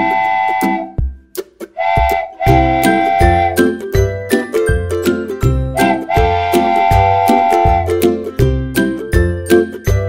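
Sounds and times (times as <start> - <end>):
cheerful children's music: 0.0 - 10.0.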